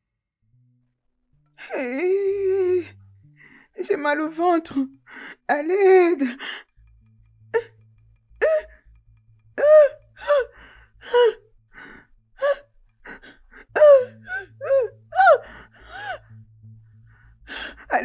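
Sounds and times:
woman sobbing and wailing: 1.6 - 3.0, 5.4 - 6.4, 8.4 - 8.7, 9.6 - 11.5, 12.4 - 16.3.

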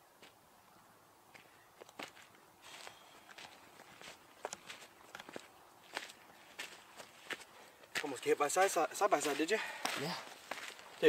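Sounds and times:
footsteps on gravel: 1.3 - 11.0.

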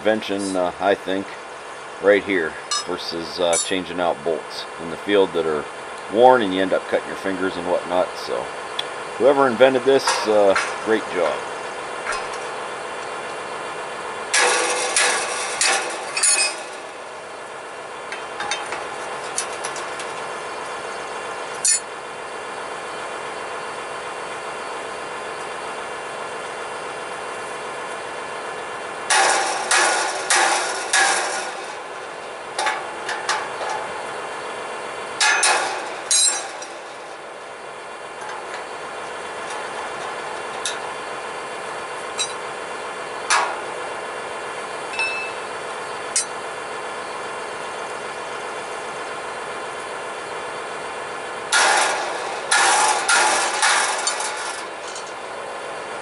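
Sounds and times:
steady hum: 0.0 - 56.0
hammer striking metal: 2.7 - 3.8, 14.3 - 17.1, 29.1 - 34.0, 35.2 - 37.3, 42.2 - 42.4, 51.5 - 55.2.

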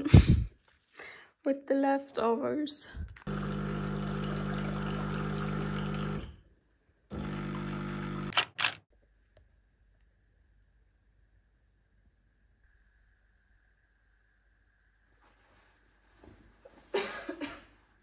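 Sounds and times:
espresso machine pump humming: 3.2 - 6.4, 7.1 - 8.3
sharp clicks: 8.3 - 8.9.

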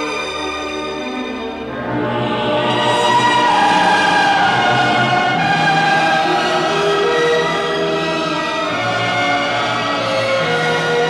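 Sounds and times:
orchestral music: 0.0 - 11.0
choir singing held chords: 1.6 - 11.0.

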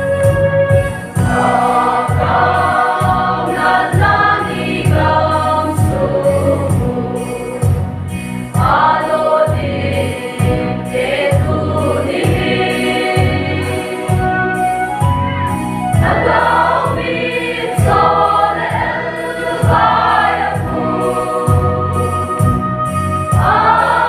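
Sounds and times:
steady low beat: 0.0 - 24.0
choir singing a hymn: 0.9 - 14.8, 15.9 - 24.0.

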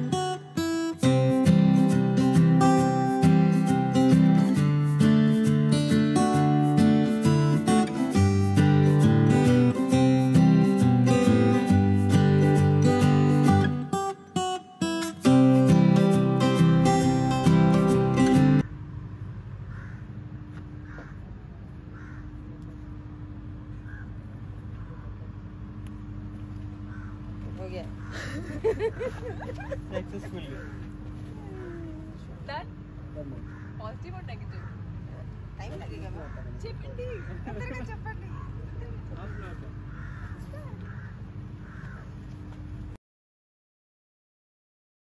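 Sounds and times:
low outdoor background hum: 0.0 - 43.0
faint steady hum: 18.6 - 35.9
crow cawing: 19.6 - 21.3, 21.9 - 22.6, 23.8 - 24.2, 26.8 - 29.2, 30.4 - 31.7, 33.3 - 34.9, 36.2 - 37.6, 39.2 - 42.4.

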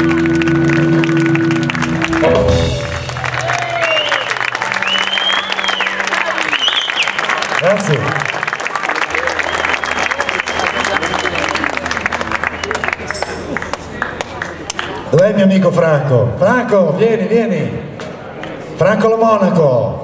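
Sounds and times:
audience applauding: 0.0 - 15.1.

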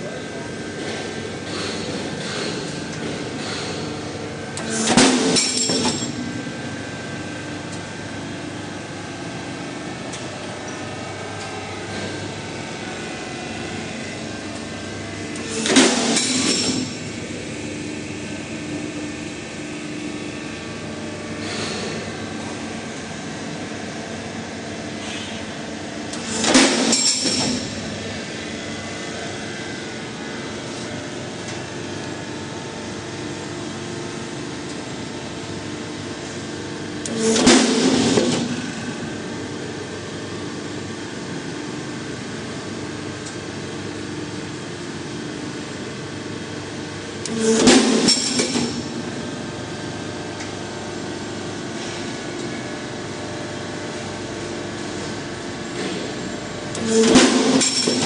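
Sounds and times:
machine humming: 0.0 - 41.6
harsh machine noises: 20.7 - 31.7, 47.0 - 49.5, 54.1 - 58.0.

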